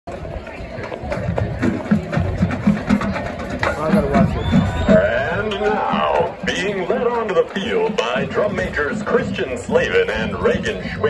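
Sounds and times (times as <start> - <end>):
background music: 0.1 - 11.0
spectators talking: 0.1 - 11.0.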